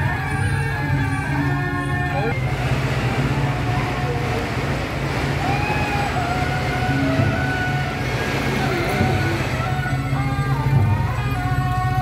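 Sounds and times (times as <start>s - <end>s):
people's voices: 0.0s - 12.0s
vehicle engine passing by: 2.3s - 10.8s.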